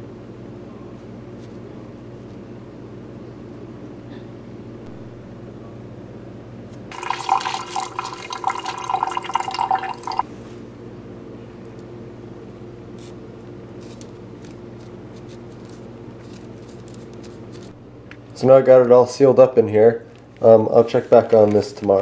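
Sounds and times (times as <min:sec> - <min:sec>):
steady low hum: 0:00.0 - 0:21.5
tap water running into sink: 0:06.9 - 0:10.2.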